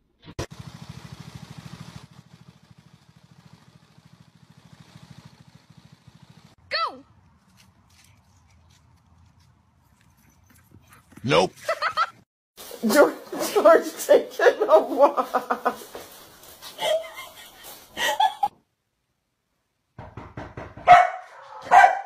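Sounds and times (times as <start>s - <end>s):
string trimmer engine buzzing: 0.4s - 6.6s.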